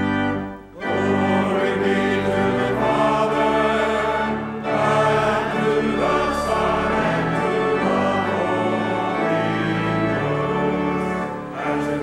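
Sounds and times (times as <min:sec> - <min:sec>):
church choir singing: 0:00.0 - 0:12.0
organ accompaniment: 0:00.0 - 0:12.0.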